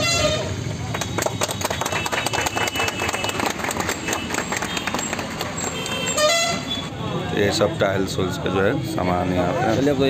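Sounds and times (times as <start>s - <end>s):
people clapping: 0.7s - 6.2s.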